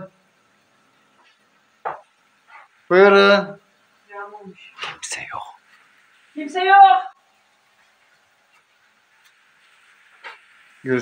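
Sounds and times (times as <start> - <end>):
pan cooking hiss: 0.0 - 11.0.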